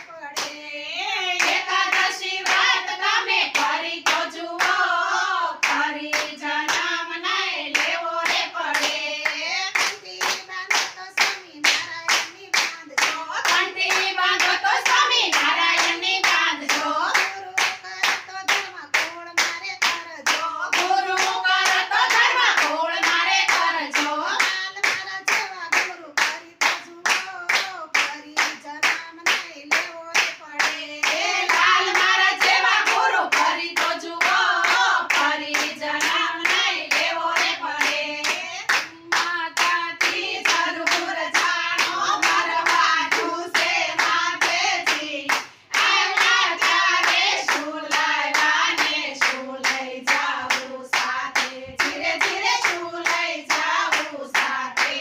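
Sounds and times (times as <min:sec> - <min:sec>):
hands clapping in steady beat: 0:00.0 - 0:00.6, 0:01.2 - 0:55.0
women singing devotional song: 0:00.0 - 0:55.0.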